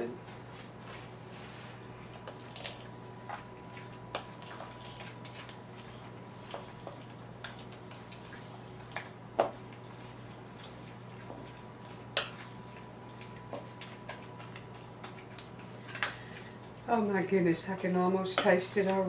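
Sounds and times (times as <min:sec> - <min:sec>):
steady low hum: 0:00.0 - 0:19.0
spoon stirring wet mixture: 0:00.9 - 0:19.0.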